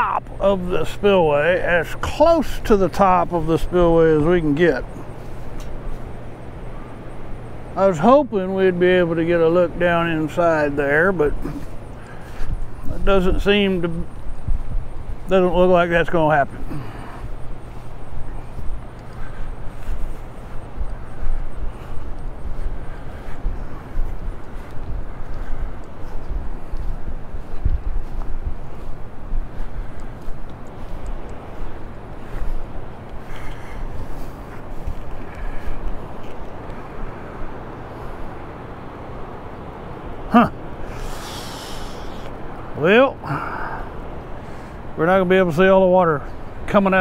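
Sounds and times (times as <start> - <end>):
low steady rumble: 0.0 - 47.0
wind buffeting microphone: 0.0 - 47.0.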